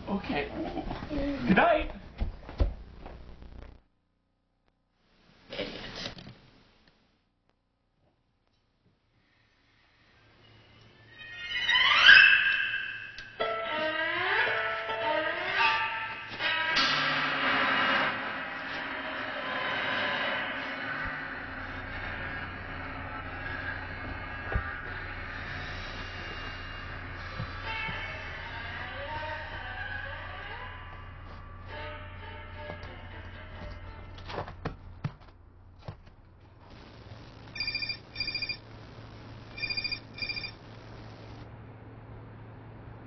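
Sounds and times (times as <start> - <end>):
steady low hum: 16.1 - 43.0
mobile phone ringing: 37.6 - 38.7, 39.5 - 40.7.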